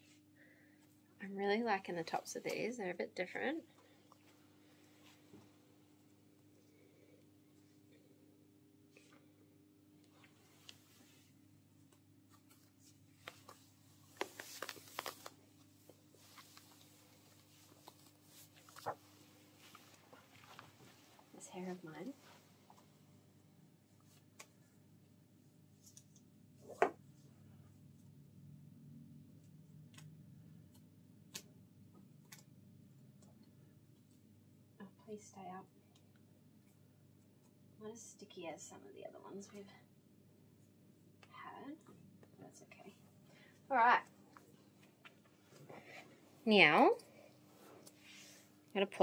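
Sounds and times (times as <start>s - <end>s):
hands rustling nylon stocking: 12.1s - 22.6s.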